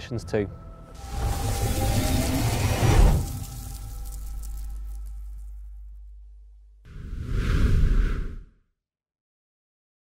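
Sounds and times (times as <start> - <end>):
low drone: 0.6 - 7.3
noisy whoosh with rising tones: 6.9 - 8.5.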